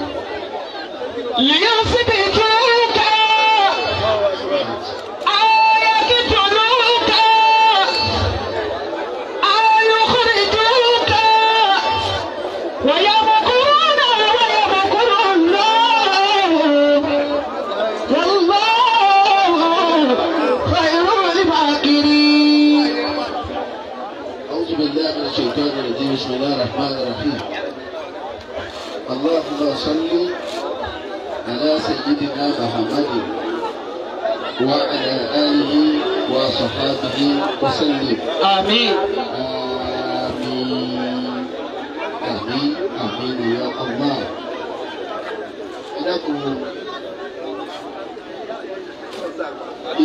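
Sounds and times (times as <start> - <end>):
babble of overlapping voices: 0.0 - 50.0
crowd chatter: 0.0 - 50.0
man speaking over loudspeaker: 0.0 - 50.0.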